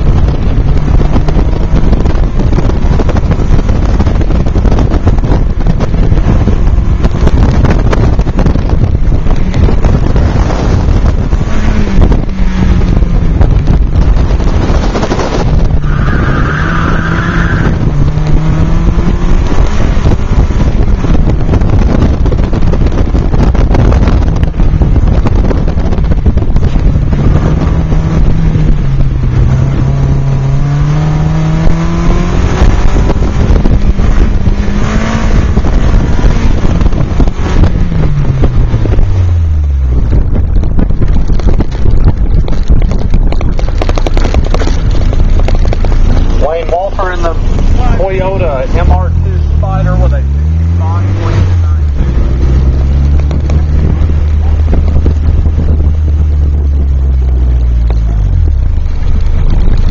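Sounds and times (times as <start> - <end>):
car engine under load: 0.0 - 59.9
wind buffeting microphone: 0.0 - 59.9.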